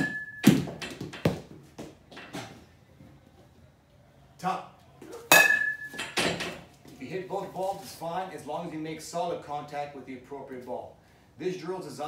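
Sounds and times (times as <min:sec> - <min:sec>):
baseball bat ringing: 0:00.0 - 0:01.0, 0:05.3 - 0:06.4
balls knocking and bouncing: 0:00.0 - 0:02.6.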